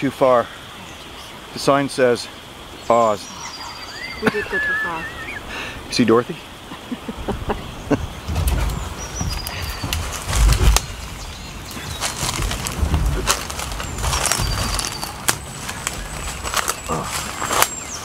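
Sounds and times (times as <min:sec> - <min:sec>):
high bird chirps: 0:02.8 - 0:05.5, 0:13.7 - 0:18.0
handling noise bumps: 0:07.9 - 0:17.8
twigs crackling and snapping: 0:08.3 - 0:18.0.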